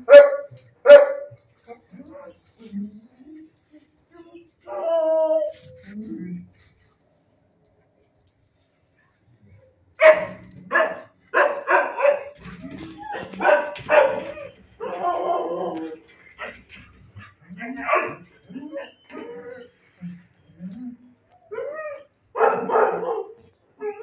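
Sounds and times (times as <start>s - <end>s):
dogs barking: 0.0s - 1.4s, 10.0s - 15.6s, 17.8s - 19.2s, 22.3s - 24.0s.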